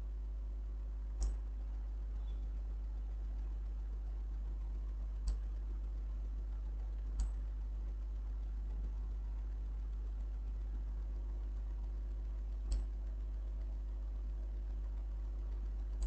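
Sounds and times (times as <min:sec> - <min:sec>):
low electrical hum: 0:00.0 - 0:16.0
computer mouse click: 0:01.2 - 0:01.4, 0:05.2 - 0:05.5, 0:07.2 - 0:07.4, 0:12.7 - 0:12.9.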